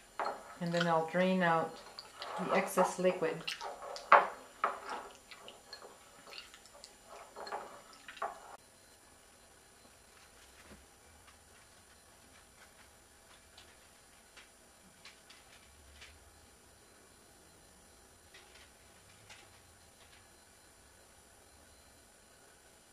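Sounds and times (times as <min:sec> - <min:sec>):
wet slime squishing and dripping: 0:03.4 - 0:04.1, 0:04.8 - 0:07.0.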